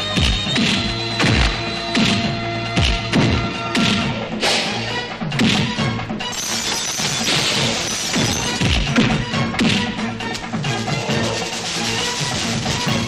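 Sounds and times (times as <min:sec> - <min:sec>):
fight scene film score: 0:00.0 - 0:13.0.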